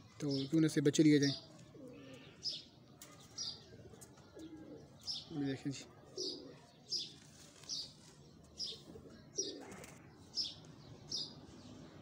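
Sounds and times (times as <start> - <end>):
small bird chirping: 6.2 - 12.0.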